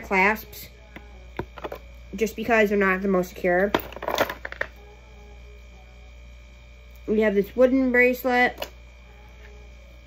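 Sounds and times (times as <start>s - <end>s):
low steady hum: 0.0s - 10.0s
jewelry clinking and rattling: 3.6s - 4.8s.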